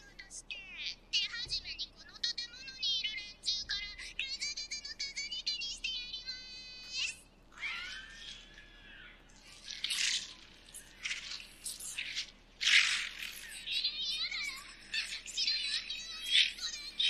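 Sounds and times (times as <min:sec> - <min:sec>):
high-pitched warped voice: 0:00.0 - 0:17.0.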